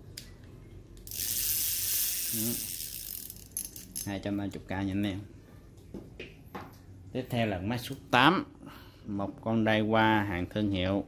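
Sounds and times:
fishing reel whirring: 1.0 - 4.0.

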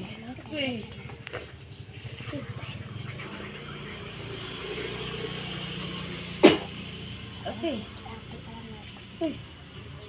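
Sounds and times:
motor engine running: 0.0 - 10.0.

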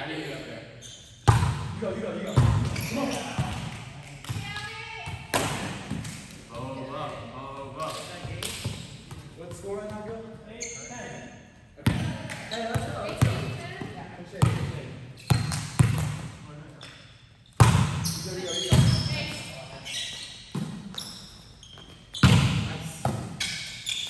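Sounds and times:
volleyball being struck: 5.1 - 6.1.

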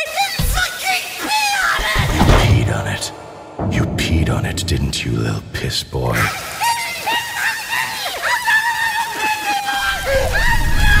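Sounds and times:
low rumble: 1.8 - 6.0.

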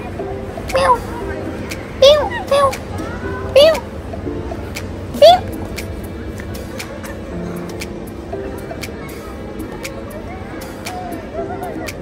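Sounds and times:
person imitating a cat meow: 0.7 - 1.0, 2.0 - 2.8, 3.5 - 3.8.

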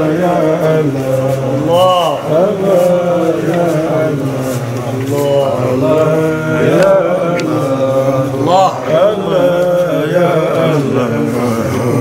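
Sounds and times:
solo voice chanting: 0.0 - 12.0.

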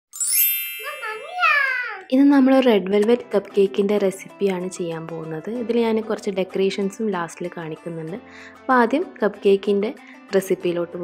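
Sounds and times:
sparkling chime: 0.1 - 1.9.

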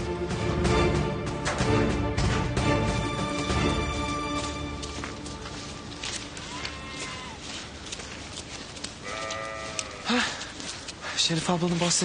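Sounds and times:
farm animal calling: 6.3 - 8.1, 8.8 - 10.4.

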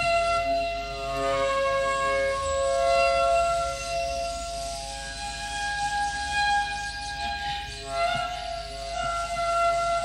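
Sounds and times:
slow meditative flute music: 0.0 - 10.0.

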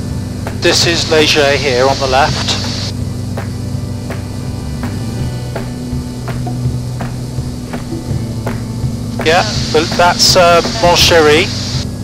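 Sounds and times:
low drone of aircraft engine: 0.0 - 12.0.

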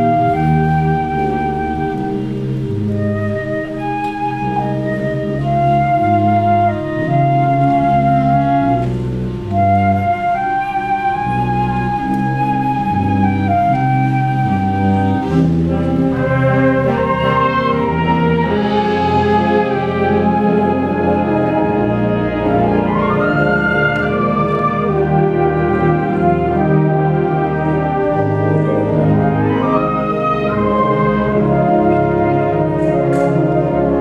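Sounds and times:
wind ensemble playing: 0.0 - 34.0.

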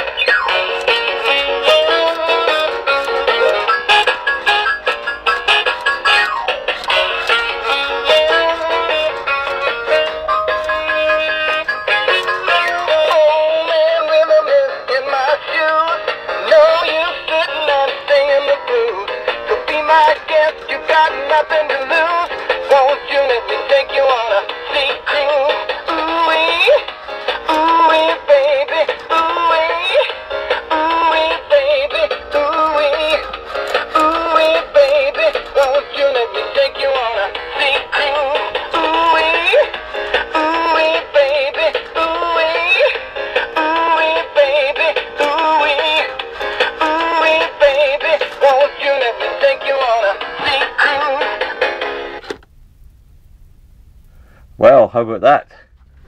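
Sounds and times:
tinny rock and roll song from toy: 0.0 - 52.3.

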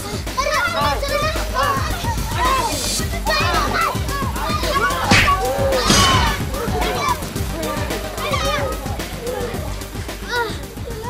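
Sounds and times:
background music: 0.0 - 11.0
children shouting: 0.0 - 11.0.

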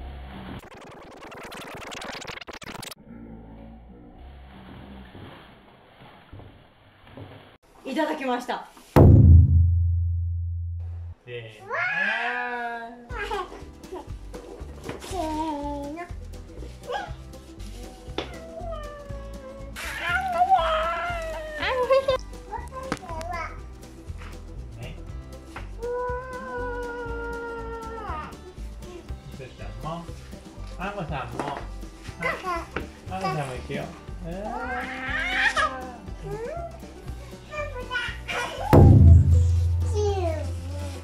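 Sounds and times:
background music with steady beat: 9.0 - 11.2, 13.2 - 18.4, 22.0 - 34.7, 35.8 - 41.0.

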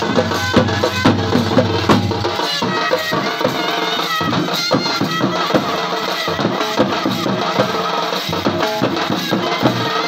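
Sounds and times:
reedy melody line: 0.0 - 3.4
barrel drums beaten: 0.0 - 10.0.

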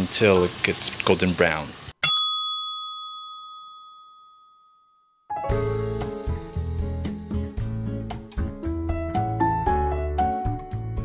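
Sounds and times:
small bell ding: 2.0 - 5.3.

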